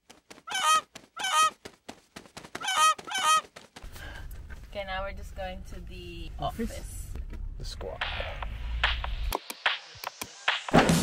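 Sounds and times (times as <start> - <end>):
goose honking: 0.4 - 1.6, 2.6 - 3.5.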